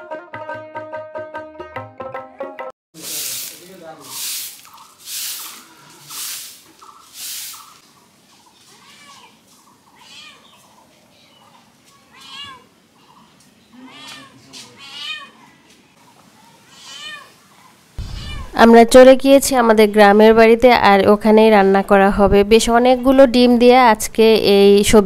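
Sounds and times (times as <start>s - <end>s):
broom sweeping dirt: 3.0s - 9.7s
high animal calls: 4.0s - 7.8s, 11.5s - 15.7s, 16.3s - 18.6s.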